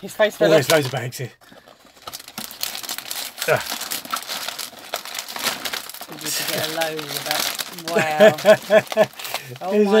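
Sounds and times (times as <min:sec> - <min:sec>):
plastic bags and confetti crinkling: 0:00.4 - 0:10.0.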